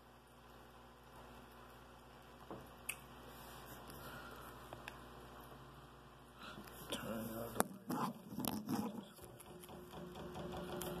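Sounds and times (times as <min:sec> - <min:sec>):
sharp knocks: 0:09.4 - 0:11.0.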